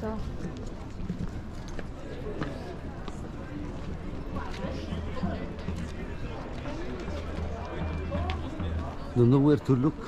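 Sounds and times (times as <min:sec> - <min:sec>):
faint voices: 0:00.0 - 0:10.0
footsteps on stone paving: 0:00.0 - 0:10.0.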